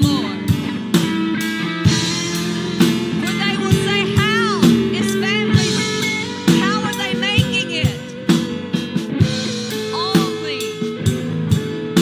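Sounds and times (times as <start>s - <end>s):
drum beat: 0.0s - 12.0s
keyboard: 0.0s - 12.0s.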